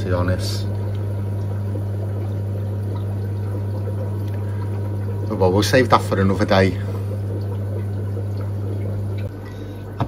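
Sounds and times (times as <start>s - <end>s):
aquarium filter hum: 0.0s - 10.0s
water trickling: 0.0s - 10.0s.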